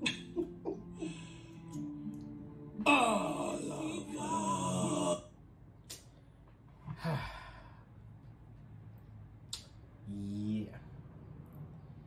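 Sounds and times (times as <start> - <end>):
person sighing: 0.9 - 1.6, 6.9 - 7.8.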